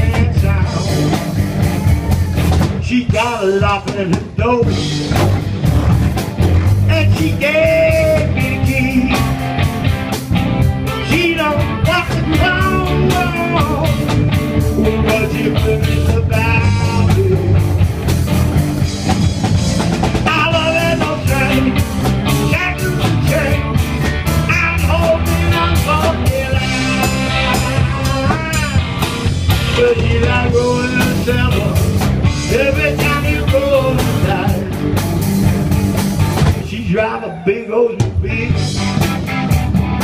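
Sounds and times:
bending lead guitar line: 0.0 - 40.0
blues-rock band playing: 0.0 - 40.0.

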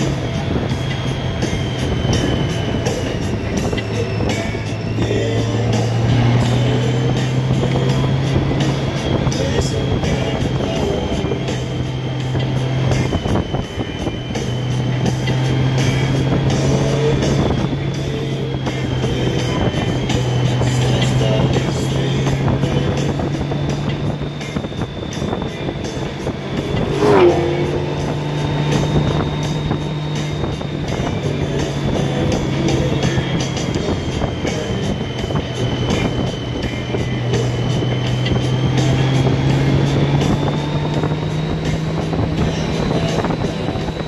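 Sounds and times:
motorcycle engine running: 0.0 - 44.0
wind and road noise: 0.0 - 44.0.

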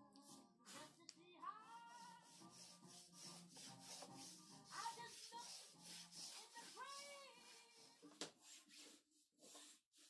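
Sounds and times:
hand plane scraping wood: 2.0 - 10.0.

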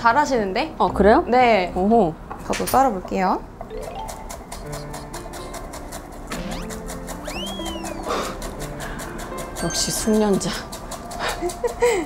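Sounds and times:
light background music: 0.0 - 12.0
knife chopping on wooden board: 4.0 - 11.3
whistling slide sound effect: 6.4 - 8.4.

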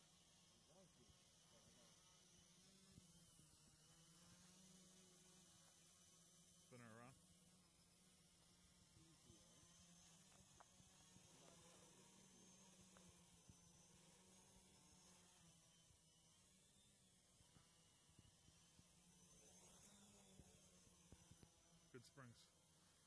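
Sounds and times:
quadcopter motors whining: 0.0 - 23.0.

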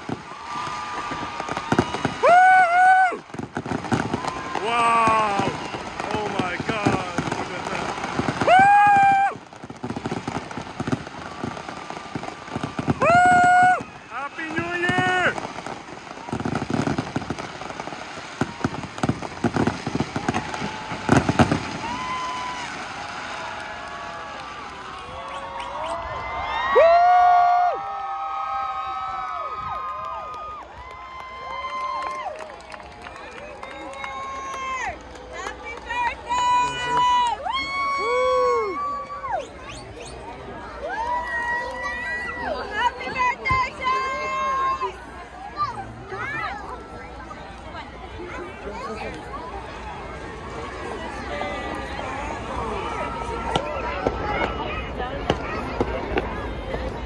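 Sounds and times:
crowd whooping and cheering: 0.0 - 47.7, 48.4 - 55.6
fireworks crackling and banging: 0.0 - 57.0.

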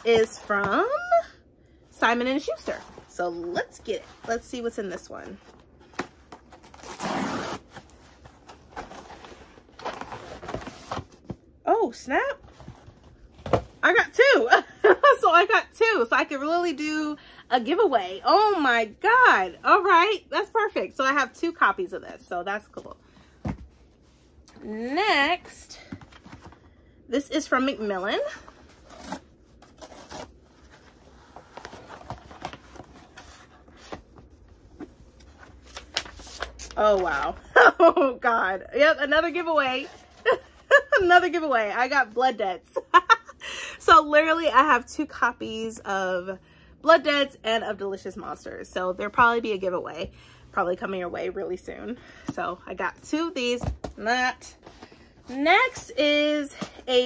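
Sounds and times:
wrapping rustling and scraping: 2.2 - 11.5, 27.6 - 37.3.

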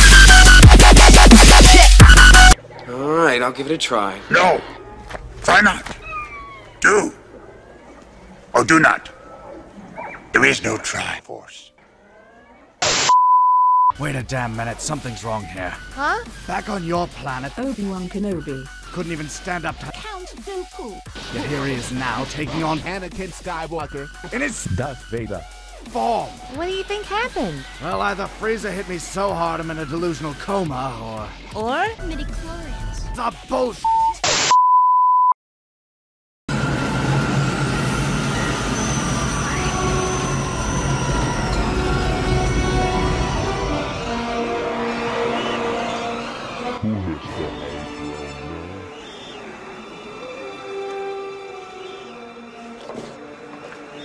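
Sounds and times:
loud static burst: 12.8 - 13.2
high electronic beep: 13.0 - 13.9
short beep: 13.0 - 13.9, 33.9 - 35.3.

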